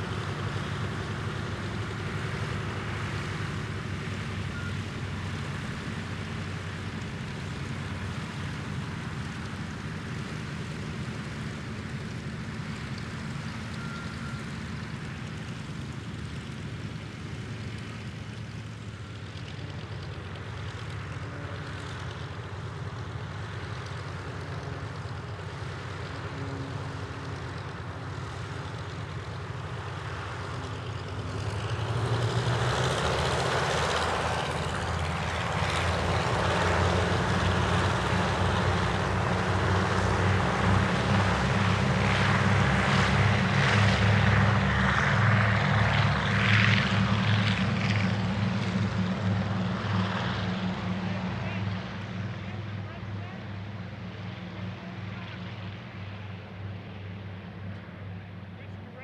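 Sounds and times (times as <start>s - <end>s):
radial aircraft engines and propellers: 0.0s - 59.0s.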